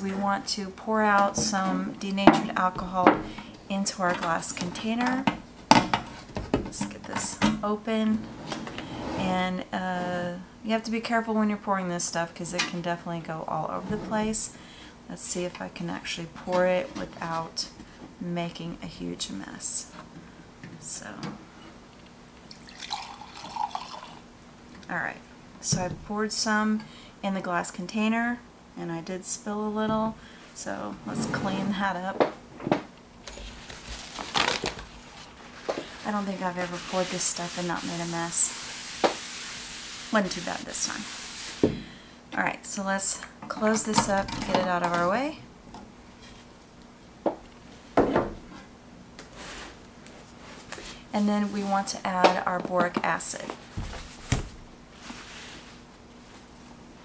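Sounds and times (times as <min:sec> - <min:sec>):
liquid pouring into glass jar: 0:22.5 - 0:24.2
cloth swishing while wiping: 0:35.2 - 0:41.6, 0:53.8 - 0:56.6.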